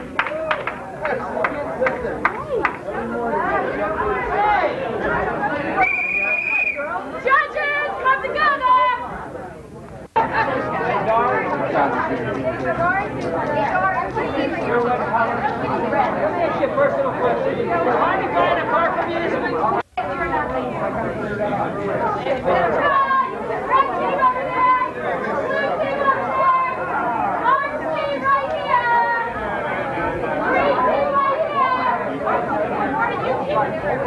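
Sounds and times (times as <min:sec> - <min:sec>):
many people chatting: 0:00.0 - 0:34.0.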